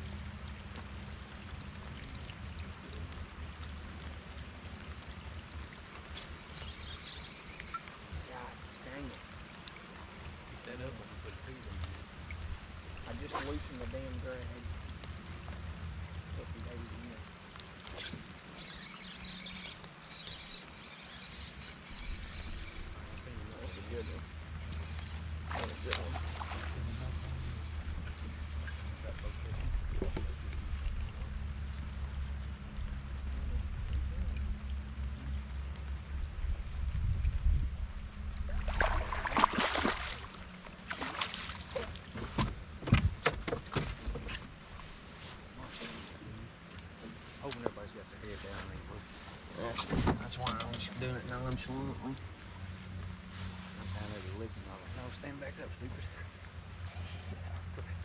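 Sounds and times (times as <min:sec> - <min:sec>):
rain on water: 0:00.0 - 0:58.0
electric trolling motor humming: 0:18.1 - 0:25.5.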